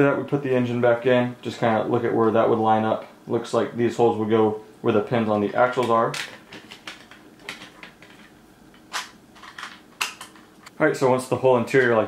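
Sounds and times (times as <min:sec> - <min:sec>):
plastic parts clicking: 0:05.8 - 0:10.5.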